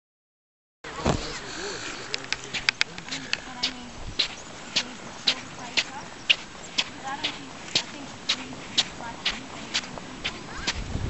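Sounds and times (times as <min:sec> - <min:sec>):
footsteps squeaking in sand: 0:00.9 - 0:10.9.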